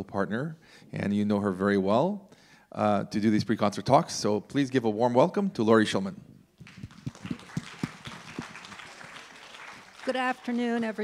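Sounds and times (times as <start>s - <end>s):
audience applauding: 6.6s - 11.0s
close loud claps: 6.6s - 11.0s.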